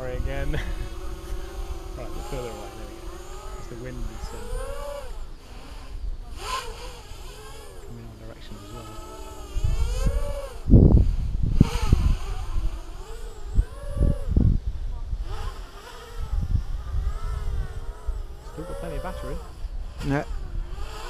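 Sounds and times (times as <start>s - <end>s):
drone motors whining: 0.0s - 21.0s
wind gusts hitting microphone: 0.0s - 21.0s.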